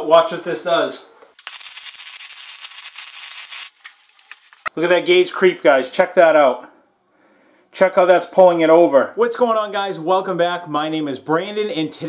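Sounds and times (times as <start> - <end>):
welding arc crackling: 1.4 - 4.7.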